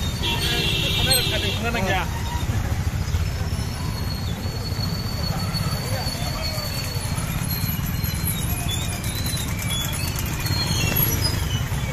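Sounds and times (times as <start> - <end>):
motorcycles rumbling at low speed: 0.0 - 11.9.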